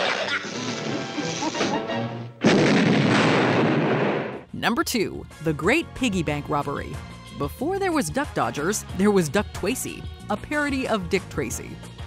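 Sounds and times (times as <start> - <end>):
orchestral cartoon music: 0.1 - 2.4
loud cartoon explosion: 2.4 - 4.5.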